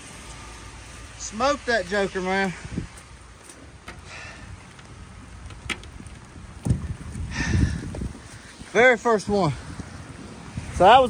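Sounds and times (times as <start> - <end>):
steady rain hiss: 0.0 - 11.0.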